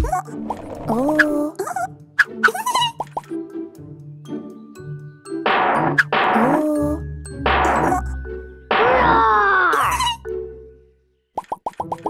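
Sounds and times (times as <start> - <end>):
light cartoon background music: 0.0 - 12.0.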